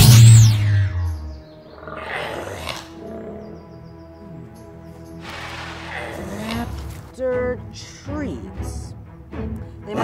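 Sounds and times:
sci-fi teleport boom: 0.0s - 1.1s
high sweeping tone: 0.0s - 1.2s
background music: 0.0s - 10.0s.

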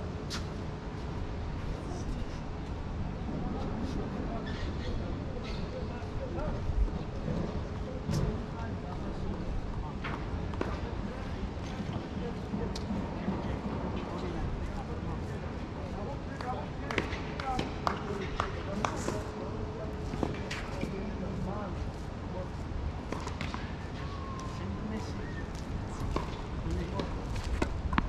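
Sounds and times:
wind rumble on microphone: 0.0s - 15.7s
tennis balls struck by rackets: 16.4s - 19.2s, 26.0s - 28.0s.

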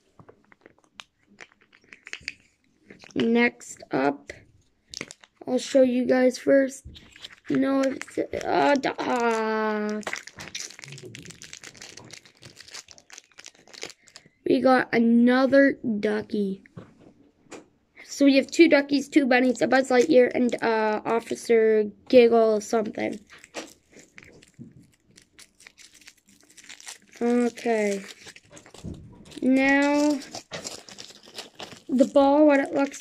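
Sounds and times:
foil wrapper crinkling: 0.0s - 3.2s, 4.9s - 5.4s, 7.0s - 14.4s, 23.0s - 33.0s.

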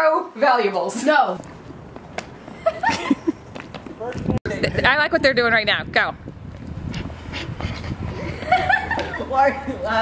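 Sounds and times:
person laughing: 2.6s - 3.4s, 8.1s - 9.9s.

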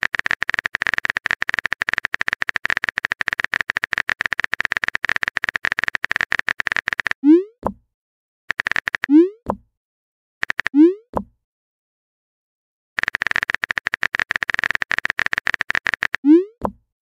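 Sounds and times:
phone keyboard typing clicks: 0.0s - 7.8s, 8.5s - 9.7s, 10.4s - 11.3s, 13.0s - 16.8s.

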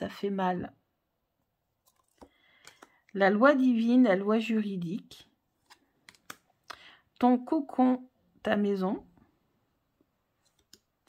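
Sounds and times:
cards clicking: 5.6s - 6.5s.

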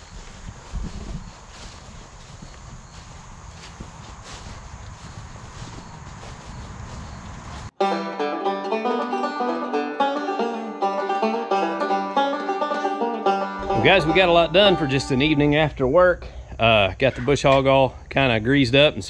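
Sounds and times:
banjo bluegrass music: 7.8s - 15.7s.

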